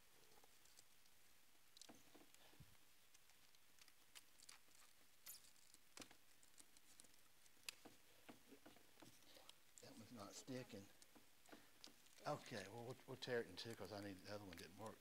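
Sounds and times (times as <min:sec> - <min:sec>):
sticky tape clicks and crackles: 0:03.0 - 0:09.9, 0:10.5 - 0:15.0.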